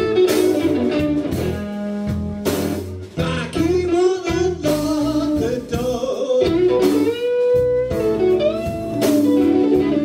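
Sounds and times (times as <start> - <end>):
drums: 0.0 - 10.0
electric bass: 0.0 - 10.0
lead guitar wavering notes: 6.6 - 10.0.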